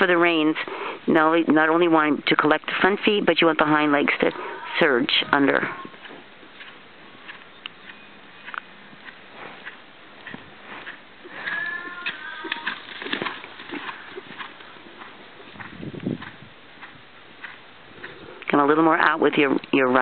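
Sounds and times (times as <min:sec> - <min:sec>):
horse hoofbeats on sand: 0:03.6 - 0:19.8.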